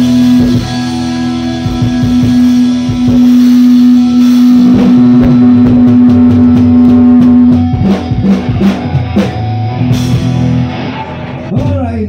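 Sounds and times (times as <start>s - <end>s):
held electric guitar note: 0.0s - 11.5s
drum hits and fills: 0.0s - 11.9s.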